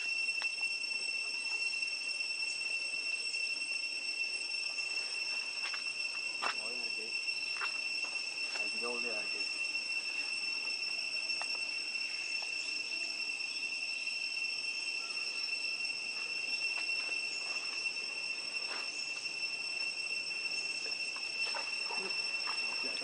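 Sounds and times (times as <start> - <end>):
high-pitched insect drone: 0.0 - 23.0.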